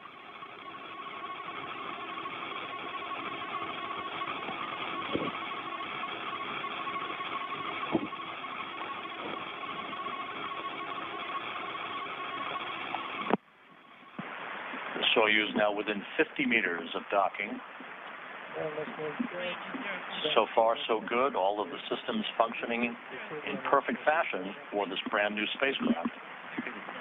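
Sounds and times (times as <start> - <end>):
radio static hiss: 0.0 - 27.0
radio clicks: 25.8 - 26.8.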